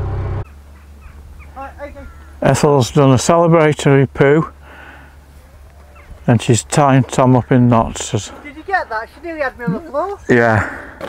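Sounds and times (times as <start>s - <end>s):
boat engine humming: 0.0s - 11.0s
bird calls: 0.4s - 2.6s, 4.5s - 10.0s.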